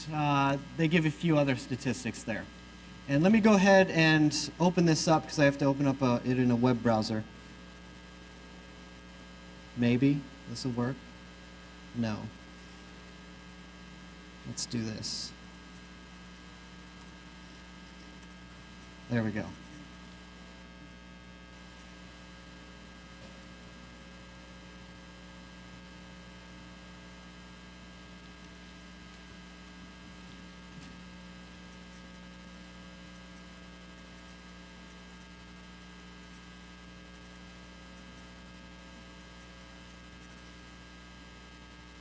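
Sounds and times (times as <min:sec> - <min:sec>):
electrical mains hum: 0:00.0 - 0:42.0.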